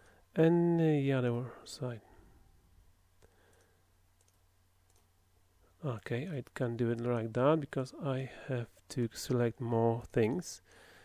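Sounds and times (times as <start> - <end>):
computer mouse clicks: 3.2 - 5.1.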